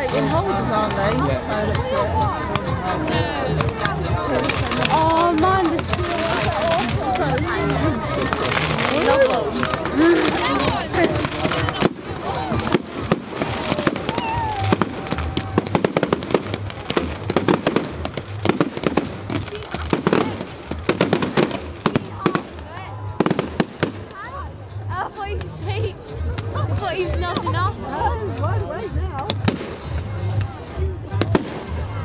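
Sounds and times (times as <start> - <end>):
fireworks bursting and crackling: 0.0 - 24.5, 29.2 - 32.0
people talking: 0.0 - 32.0.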